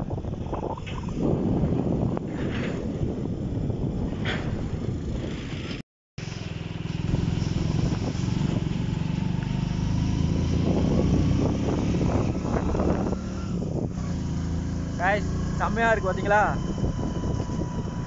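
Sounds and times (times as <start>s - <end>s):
vehicle engine rumbling: 0.0s - 18.0s
man's voice: 15.0s - 16.6s.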